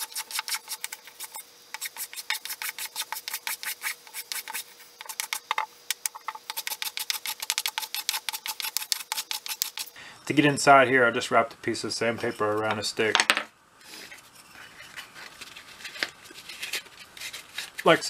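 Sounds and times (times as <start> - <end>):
block plane strokes on wood: 0.0 - 9.9.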